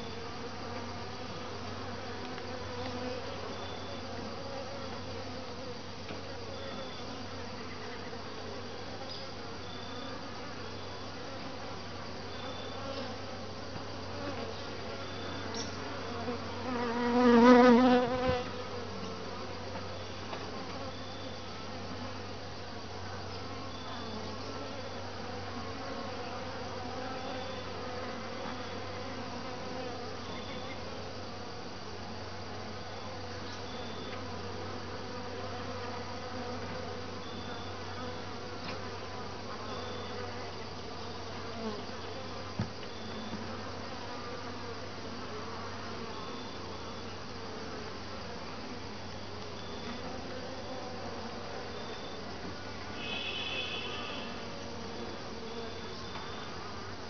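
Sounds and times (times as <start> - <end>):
bee flying past close: 0.0 - 9.3, 12.4 - 19.7
bees buzzing: 0.0 - 32.1.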